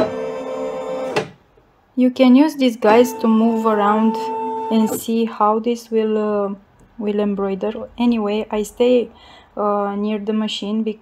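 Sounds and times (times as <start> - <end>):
embroidery machine buzzy tone: 2.8 - 5.1.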